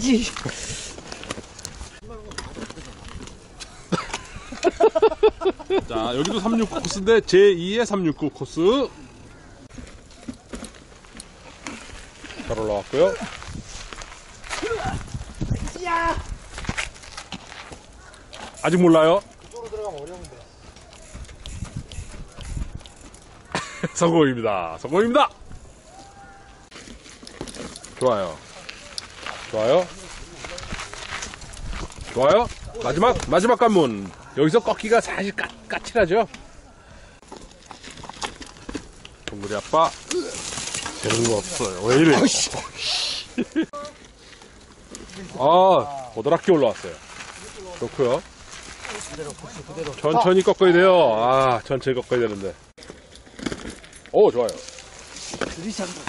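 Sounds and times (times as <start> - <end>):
tyres crunching on roots and stones: 0.0 - 4.6, 5.8 - 24.1, 24.8 - 36.4, 37.2 - 42.7, 43.4 - 56.0.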